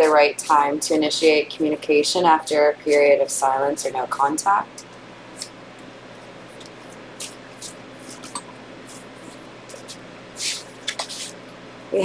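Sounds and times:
cards shuffling: 6.6 - 11.4.

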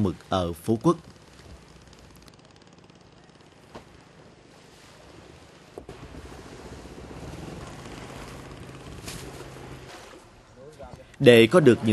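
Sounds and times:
boat engine hum: 0.0 - 11.9
small waves lapping: 0.0 - 11.9.

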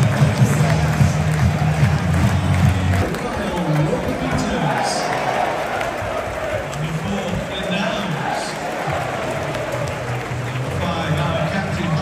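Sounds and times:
music: 0.0 - 3.9, 8.6 - 12.0
stadium crowd din: 0.0 - 12.0
voices: 2.2 - 9.8.

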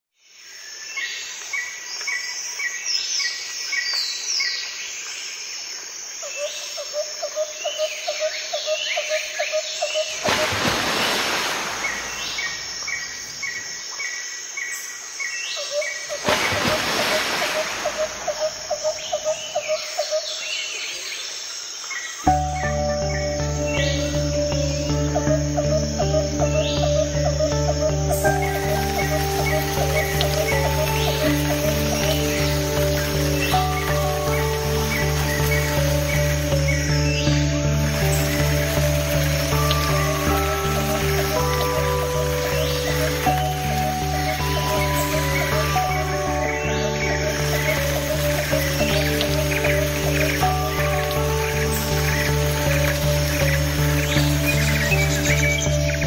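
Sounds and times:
birds chirping and trilling: 6.2 - 56.0
soft music with low bass: 22.3 - 56.0.

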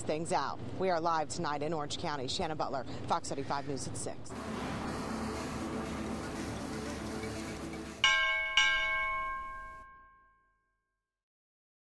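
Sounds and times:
bell-like chime ringing: 8.0 - 10.7.

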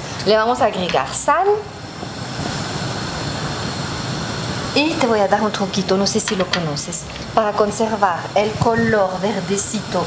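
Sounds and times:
steady rushing noise: 0.0 - 10.0.

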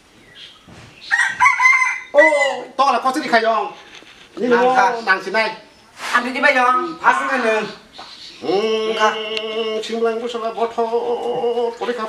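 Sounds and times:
rooster crowing: 1.1 - 2.7.

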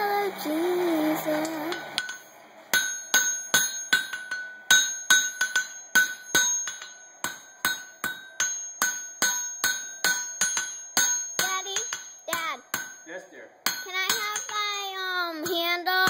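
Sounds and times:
hammer blows ringing on anvil: 1.7 - 15.8.

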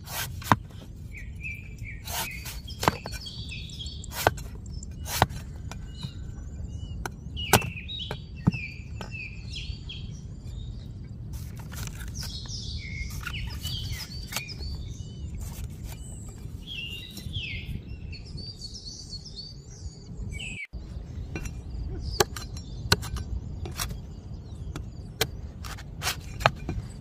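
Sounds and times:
small birds chirping: 0.0 - 27.0
steady low rumble: 0.0 - 27.0
cleaver chopping coconut: 4.1 - 5.4, 7.4 - 8.6
cleaver chop on wooden block: 7.5 - 8.6.

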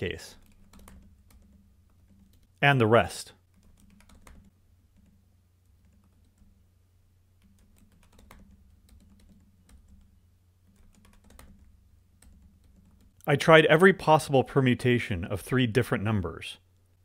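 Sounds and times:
faint keyboard typing: 0.0 - 6.6, 7.4 - 13.3
low steady hum: 0.0 - 17.0.

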